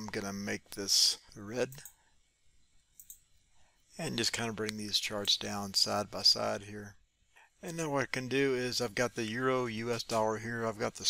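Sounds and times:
computer mouse clicking: 3.0 - 3.3.

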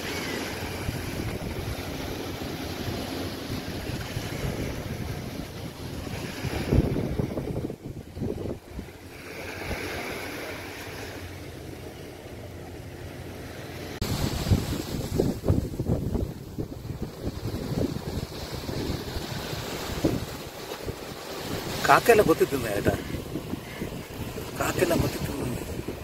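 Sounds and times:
wind buffeting microphone: 0.0 - 11.4, 14.0 - 26.0
surf on a beach: 0.0 - 26.0.

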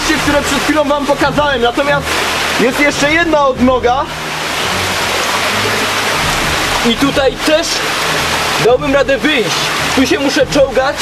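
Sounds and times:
stream rushing among boulders: 0.0 - 11.0.

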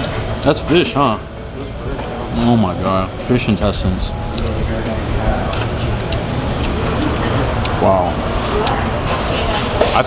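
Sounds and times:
faint voices: 0.0 - 10.0
low rumbling background noise: 0.0 - 10.0.

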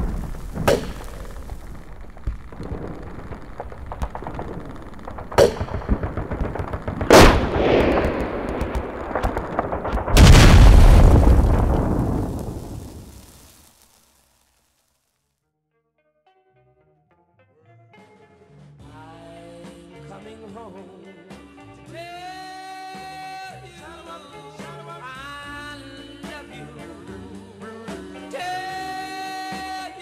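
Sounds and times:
loud rumbling explosion: 0.0 - 13.7
sharp blasts: 0.0 - 13.9
gunfire crackling: 0.0 - 14.5.

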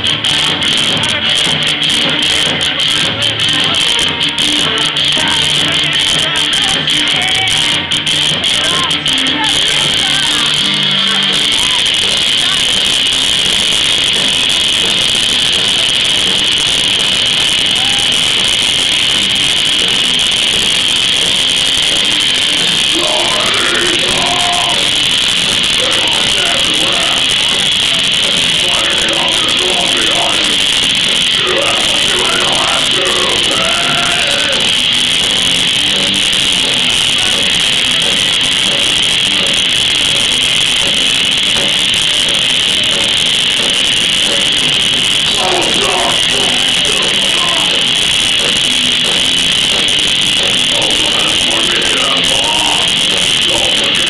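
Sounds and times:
heavy metal band playing: 0.0 - 54.0.

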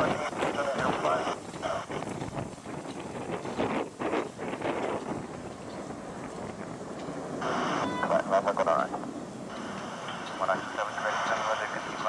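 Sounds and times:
jet airliner climbing: 0.0 - 12.0
wind on microphone: 0.0 - 12.0.

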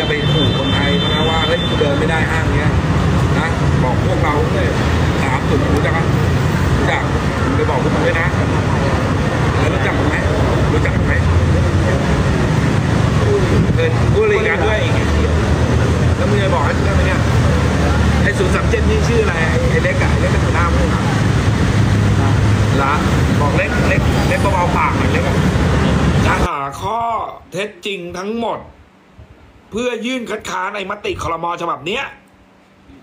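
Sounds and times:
roadside traffic rumble: 0.0 - 26.5
indistinct voices talking: 0.0 - 28.6.

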